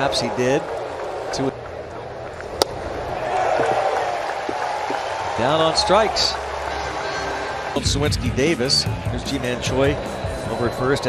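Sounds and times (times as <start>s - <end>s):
crowd murmur: 6.3s - 10.8s.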